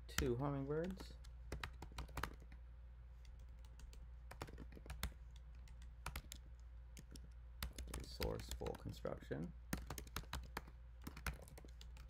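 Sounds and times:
steady low hum: 0.0s - 12.0s
computer keyboard key clicks: 3.2s - 8.8s, 9.7s - 12.0s.

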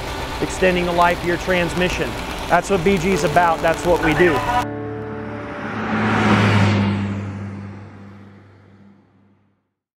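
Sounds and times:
engine-like drone: 0.0s - 9.7s.

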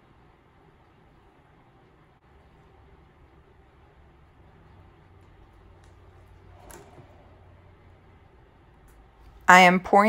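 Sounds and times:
low hum: 0.0s - 9.6s.

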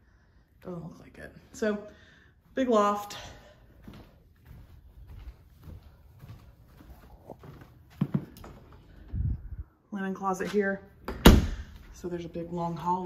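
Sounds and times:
footsteps on carpet: 2.4s - 9.2s.

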